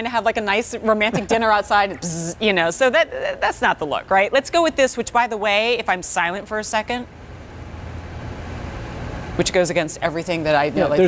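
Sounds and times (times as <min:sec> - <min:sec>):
fans humming quietly: 0:00.0 - 0:11.0.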